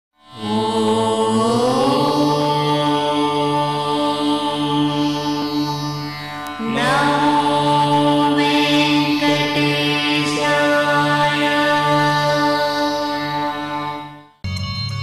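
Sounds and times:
chanted held note: 0:00.3 - 0:14.0
steady drone: 0:00.3 - 0:14.2.

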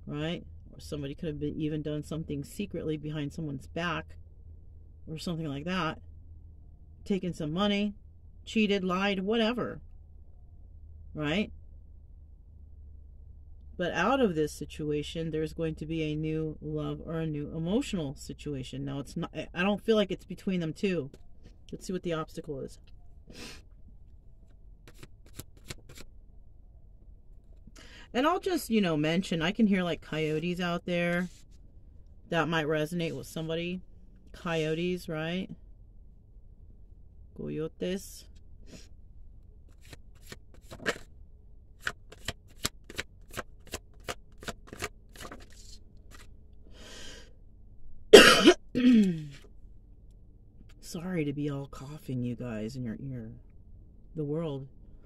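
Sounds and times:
cards clicking and snapping: 0:24.8 - 0:26.1, 0:41.8 - 0:46.3
woman coughing: 0:48.1 - 0:49.3.

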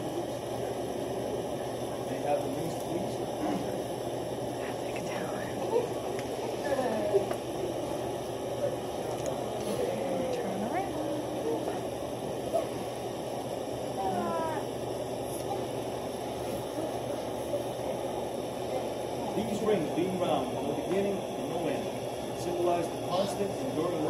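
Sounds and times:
murmur of voices: 0:00.0 - 0:24.0.

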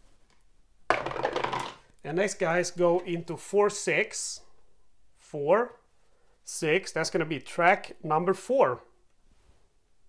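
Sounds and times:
dice clattering in a tray: 0:00.9 - 0:01.9.

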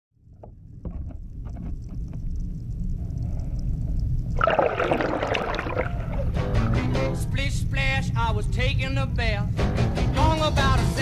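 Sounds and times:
muffled water sloshing and bubbling: 0:00.2 - 0:07.2
small knocks: 0:00.3 - 0:02.2.

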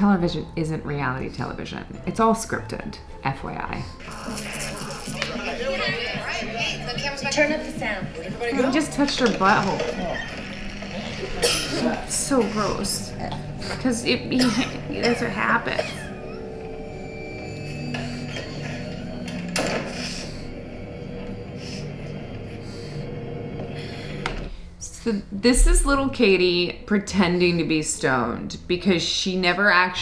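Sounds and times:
film soundtrack music with voices: 0:02.8 - 0:24.8.

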